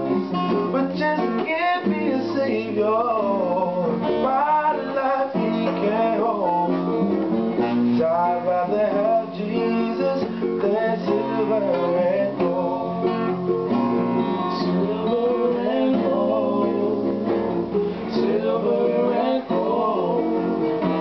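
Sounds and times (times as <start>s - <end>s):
man singing: 0.0s - 7.0s, 7.9s - 13.5s, 14.4s - 17.4s, 18.0s - 21.0s
guitars and ukulele strummed: 0.0s - 21.0s.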